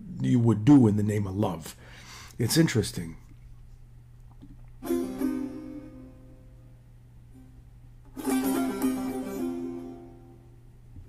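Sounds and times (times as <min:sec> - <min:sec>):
lute notes plucked: 0:04.8 - 0:06.7, 0:07.4 - 0:11.0.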